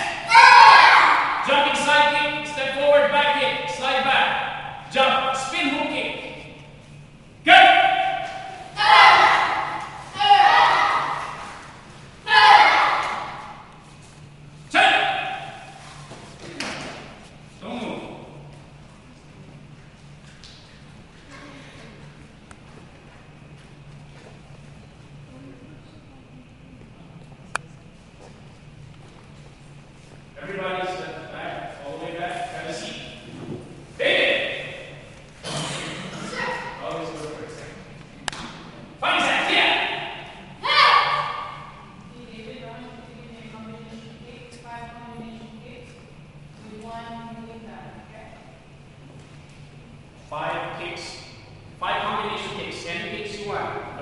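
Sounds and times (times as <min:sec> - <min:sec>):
boys shouting: 0:00.0 - 0:02.2, 0:07.4 - 0:13.7, 0:14.8 - 0:15.8, 0:36.1 - 0:36.9, 0:39.0 - 0:41.9.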